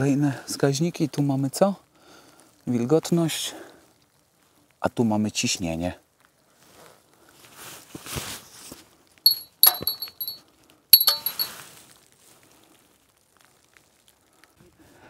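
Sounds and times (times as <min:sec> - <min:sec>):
small metal bell jingling: 0:09.3 - 0:10.4, 0:11.0 - 0:11.5.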